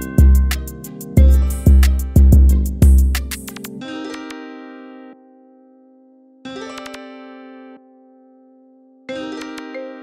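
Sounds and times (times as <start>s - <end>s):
hip-hop beat instrumental: 0.0s - 5.0s.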